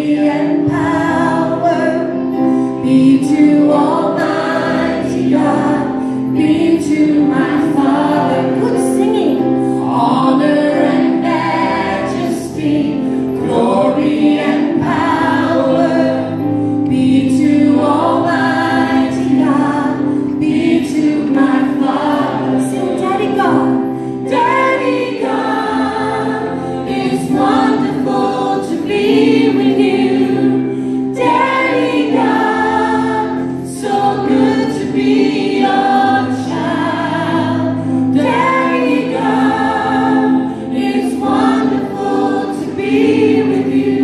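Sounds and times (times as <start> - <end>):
children singing a worship song: 0.0 - 44.0
music with sustained bass notes: 0.0 - 44.0.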